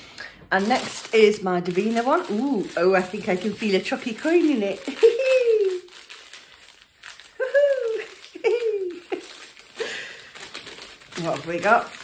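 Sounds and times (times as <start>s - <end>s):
paper crinkling: 0.3s - 12.0s
woman laughing: 4.7s - 5.8s, 7.4s - 10.0s.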